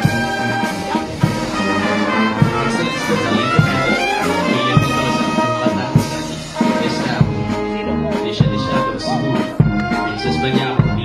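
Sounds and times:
drum beat: 0.0 - 11.0
marching band playing: 0.0 - 11.0.

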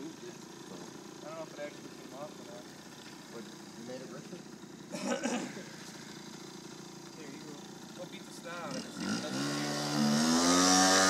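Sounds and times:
scooter engine idling: 0.0 - 10.3.

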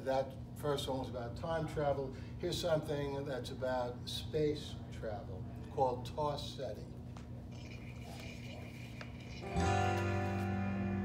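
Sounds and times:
instrumental backing track: 9.4 - 11.0.

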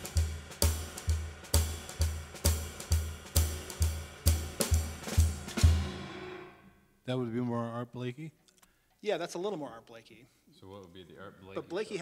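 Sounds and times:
drum kit playing jazz shuffle: 0.0 - 6.6.

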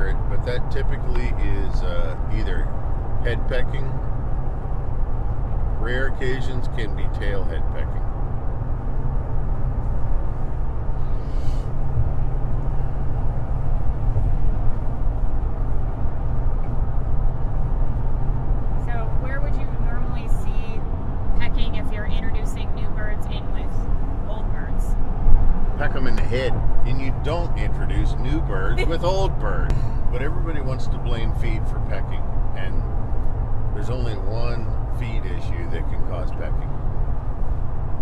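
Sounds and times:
voices: 0.0 - 4.0, 5.8 - 8.0, 18.8 - 20.8, 21.4 - 24.9, 25.8 - 32.9, 33.7 - 36.7
low background rumble: 0.0 - 38.0.

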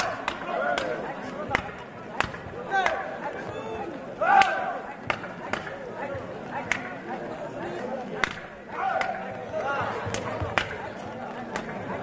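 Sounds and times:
sharp slaps: 0.0 - 3.0, 4.4 - 5.8, 6.6 - 7.0, 8.2 - 9.2.

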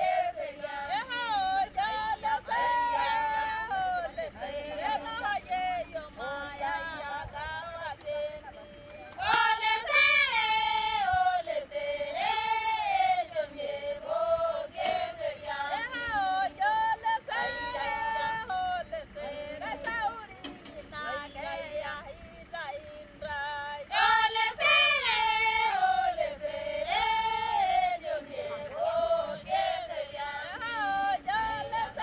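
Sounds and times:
women singing unaccompanied: 0.0 - 32.0.

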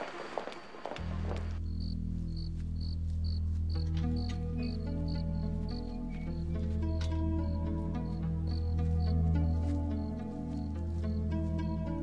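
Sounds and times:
crickets chirping: 0.0 - 11.8
low sustained music score: 0.0 - 12.0.

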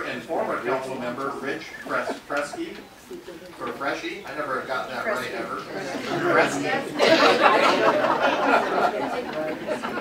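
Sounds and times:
people laughing: 1.6 - 2.8, 5.7 - 10.0.

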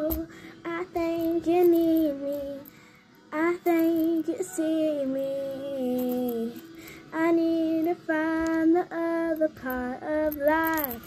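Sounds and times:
girl singing: 0.0 - 11.0.

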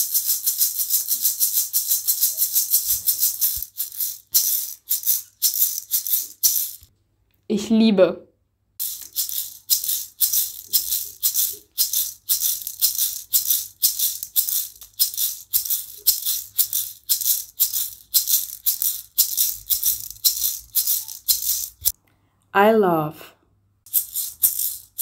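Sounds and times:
shaker rhythm: 0.0 - 6.9, 8.8 - 22.0, 23.9 - 25.0.

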